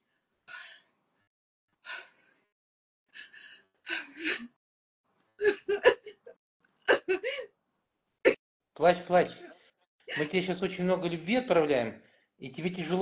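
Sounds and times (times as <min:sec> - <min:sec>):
woman crying: 0:05.4 - 0:07.5.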